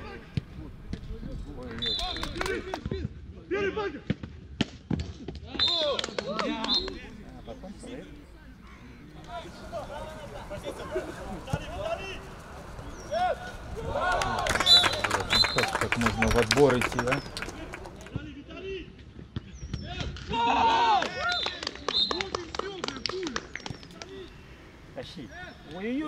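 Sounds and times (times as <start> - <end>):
footballers shouting: 5.5 - 18.8, 20.3 - 26.0.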